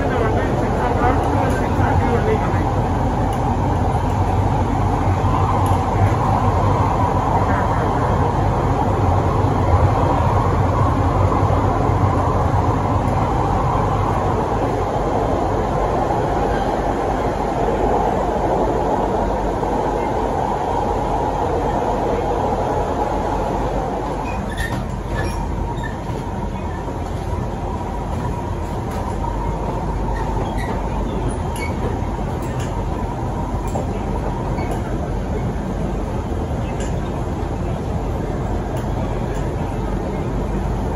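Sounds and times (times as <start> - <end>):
train wheels rumbling on rail: 0.0 - 40.9.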